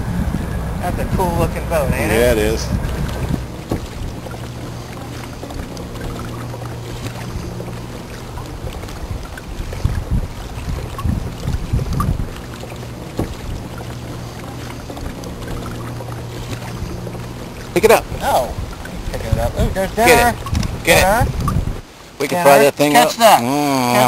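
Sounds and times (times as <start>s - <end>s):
boat motor humming: 0.0s - 24.0s
water splashing: 0.0s - 24.0s
knocks against hull: 2.7s - 4.4s, 8.8s - 12.4s, 13.0s - 13.9s.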